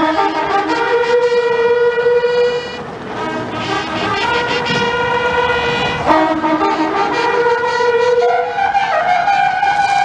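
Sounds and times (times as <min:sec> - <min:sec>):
fanfare trumpets holding a note: 0:00.0 - 0:08.8.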